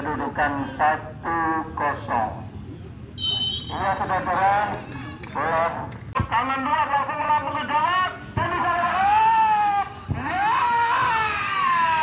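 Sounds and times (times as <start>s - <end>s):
referee whistle blast: 3.2s - 3.8s.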